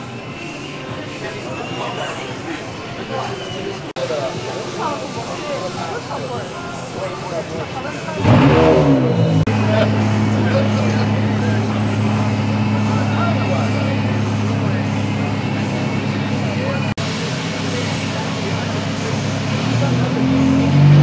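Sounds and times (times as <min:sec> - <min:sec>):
people talking: 0:00.0 - 0:21.0
car engine revving then idling: 0:08.1 - 0:21.0.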